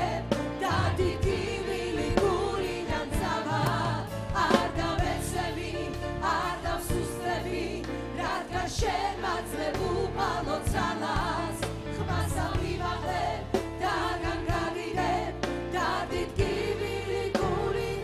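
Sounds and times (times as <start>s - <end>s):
choir singing: 0.0s - 18.0s
instrumental backing: 0.0s - 18.0s
lead singers through microphones: 0.0s - 18.0s.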